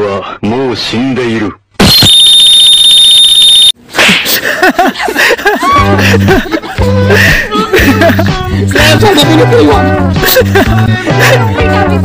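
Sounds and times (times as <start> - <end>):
high-pitched electronic alarm tone: 1.8 - 3.8.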